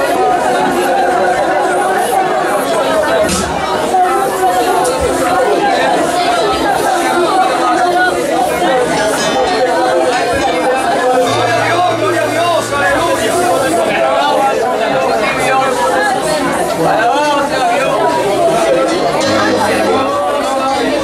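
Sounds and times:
congregation praying aloud: 0.0s - 21.0s.

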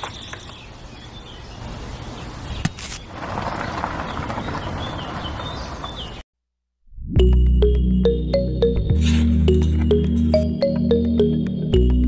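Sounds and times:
toy wheel rolling over sand: 2.8s - 6.2s.

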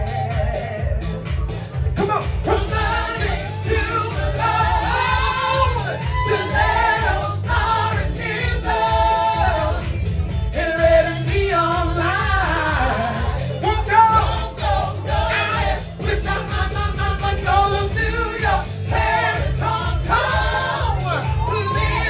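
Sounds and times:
lead singer: 0.0s - 1.2s, 2.0s - 22.0s
backing singers: 0.0s - 22.0s
pulsing bass beat: 0.0s - 22.0s.

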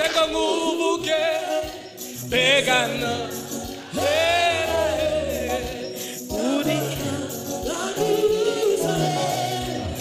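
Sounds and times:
woman singing gospel song: 3.9s - 10.0s.

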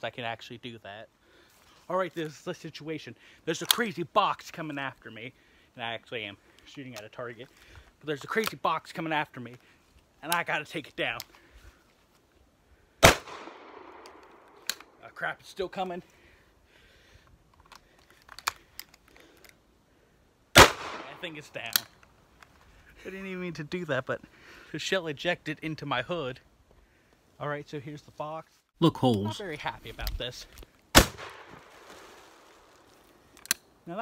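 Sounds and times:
shotgun blast: 13.0s - 14.1s, 20.6s - 21.2s, 31.0s - 31.8s.

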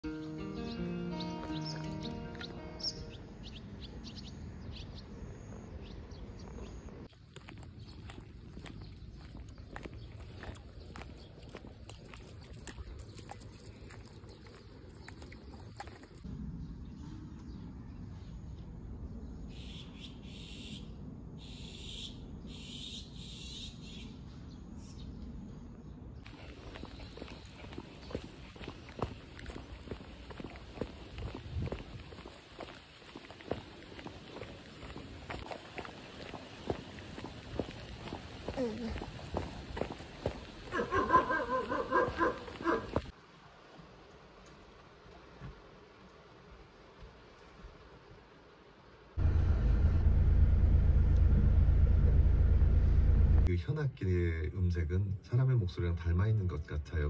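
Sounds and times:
background music: 0.0s - 3.4s
bird chirps: 0.1s - 6.9s, 19.4s - 25.2s
footsteps on asphalt: 5.8s - 16.2s, 26.2s - 40.9s
low steady rumble: 49.2s - 53.5s.

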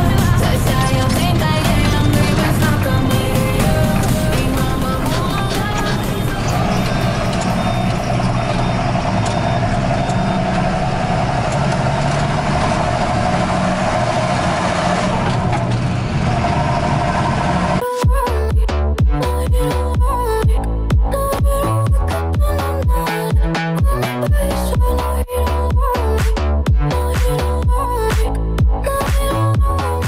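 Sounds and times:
music: 0.0s - 8.4s, 17.8s - 30.0s
tractor diesel engine droning: 0.0s - 18.0s.

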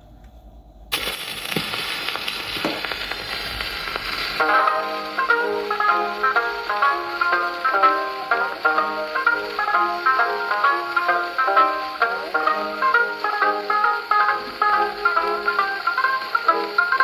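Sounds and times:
record surface hiss: 0.0s - 17.0s
record crackles: 0.1s - 17.0s
plucked banjo solo: 4.4s - 17.0s.

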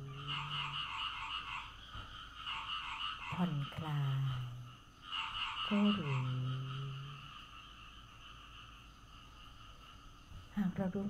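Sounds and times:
woman speaking: 0.0s - 0.8s, 3.3s - 4.8s, 5.7s - 7.3s, 10.5s - 11.0s
frogs croaking: 0.0s - 11.0s.

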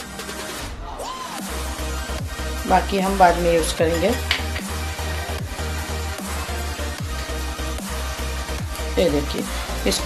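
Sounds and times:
music with bass beat: 1.4s - 10.0s.

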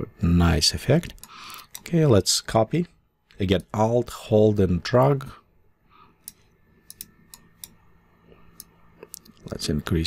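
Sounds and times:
faint steady hum: 0.0s - 10.0s
mouse and keyboard clicks: 6.2s - 7.8s.

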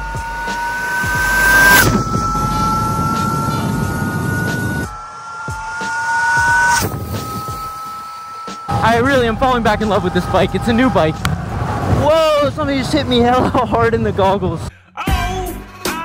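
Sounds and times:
electric motor whine: 0.0s - 10.6s
tyre and wind noise: 8.9s - 14.7s.

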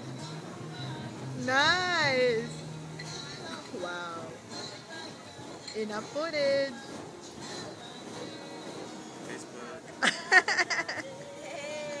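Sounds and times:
person laughing: 10.0s - 11.1s.

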